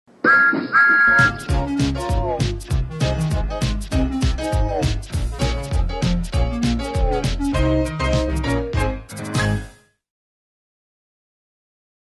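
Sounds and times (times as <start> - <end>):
upbeat music with drum beat: 1.2 - 9.8.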